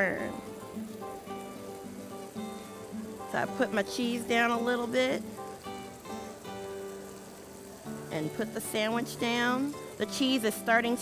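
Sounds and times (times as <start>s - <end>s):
background music with held notes: 0.0s - 11.0s
butter and onions sizzling: 0.0s - 11.0s.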